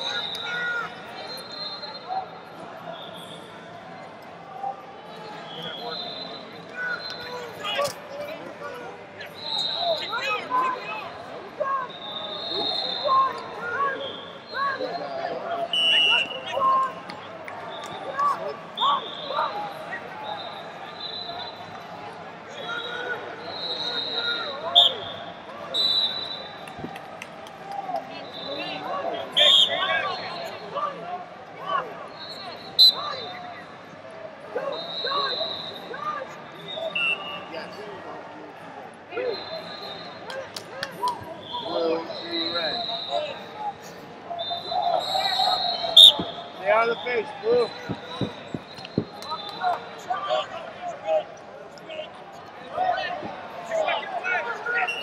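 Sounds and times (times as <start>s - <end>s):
coaches shouting: 0.0s - 3.3s, 4.5s - 26.8s, 27.5s - 33.7s, 34.4s - 37.8s, 39.1s - 55.0s.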